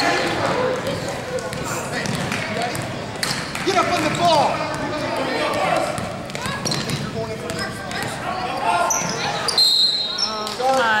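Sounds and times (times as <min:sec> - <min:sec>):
spectators shouting and chattering: 0:00.0 - 0:11.0.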